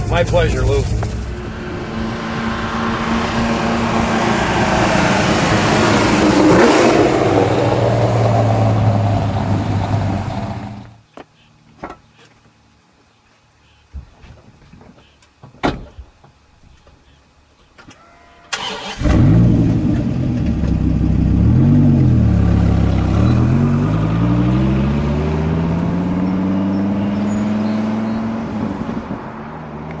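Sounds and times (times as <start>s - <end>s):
car engine starting and revving: 0.0s - 10.9s, 18.5s - 30.0s.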